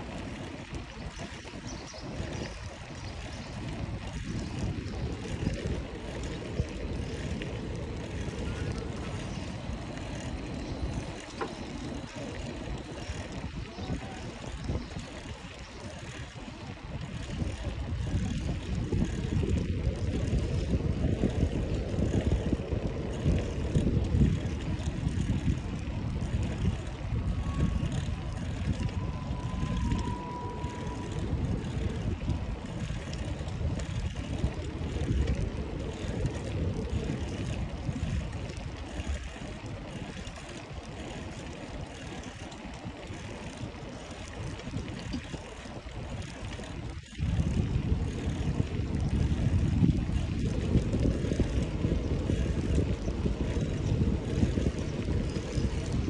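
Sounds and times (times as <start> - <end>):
bicycle tyres on brick paving: 0.0 - 56.0
wind buffeting microphone: 0.0 - 56.0.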